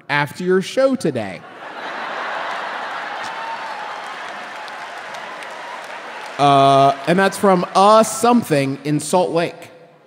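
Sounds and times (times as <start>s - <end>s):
audience applauding: 1.7s - 9.6s.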